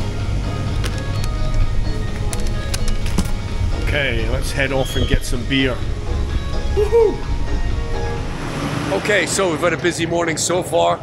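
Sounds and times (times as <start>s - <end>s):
music with low bass line: 0.0s - 9.0s.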